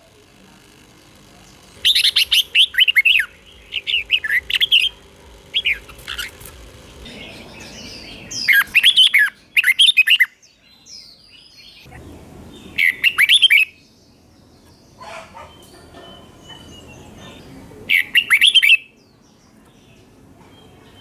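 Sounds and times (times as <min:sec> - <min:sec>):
bird singing whistled notes: 0:01.8 - 0:04.9, 0:07.1 - 0:11.9, 0:12.6 - 0:14.0, 0:17.9 - 0:19.2.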